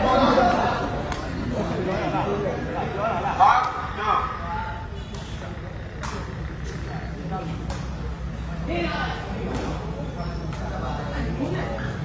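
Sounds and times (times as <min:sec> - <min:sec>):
murmur of onlookers: 0:00.0 - 0:12.0.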